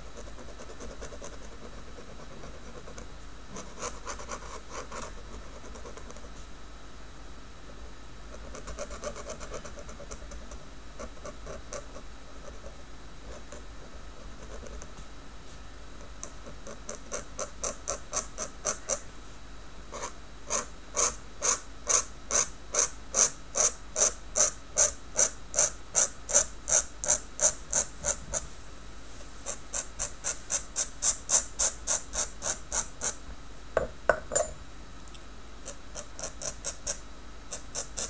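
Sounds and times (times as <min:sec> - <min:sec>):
dip pen nib scratching on paper: 0:00.0 - 0:06.5, 0:07.7 - 0:15.0, 0:16.0 - 0:19.0, 0:19.9 - 0:28.4, 0:29.4 - 0:33.2, 0:35.6 - 0:38.0.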